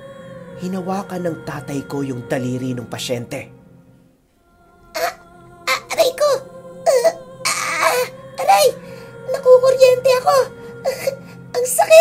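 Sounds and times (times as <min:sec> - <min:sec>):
steady background drone: 0:03.5 - 0:11.9
person moaning and sobbing in pain: 0:04.9 - 0:12.0
breathy gasp: 0:08.8 - 0:09.2.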